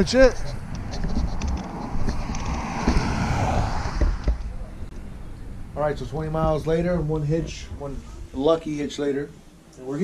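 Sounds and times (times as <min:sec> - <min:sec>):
wind rumble on microphone: 0:00.0 - 0:08.4
car passing: 0:00.5 - 0:07.7.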